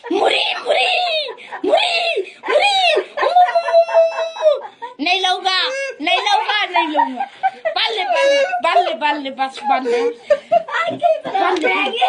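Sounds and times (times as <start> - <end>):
boy crying: 0.0 - 12.0.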